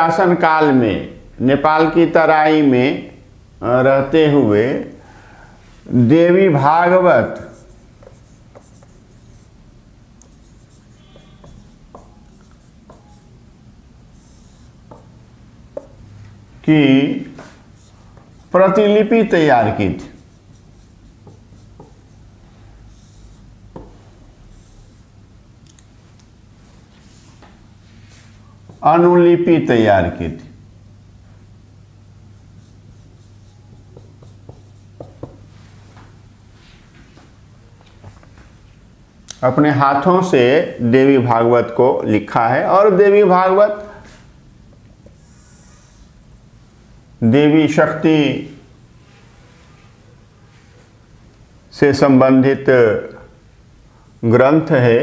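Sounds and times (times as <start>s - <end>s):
steady low hum: 0.0s - 55.0s
marker scratching on whiteboard: 6.5s - 9.6s, 10.2s - 13.5s, 14.1s - 16.1s, 17.2s - 25.1s, 32.4s - 35.7s, 45.0s - 46.2s.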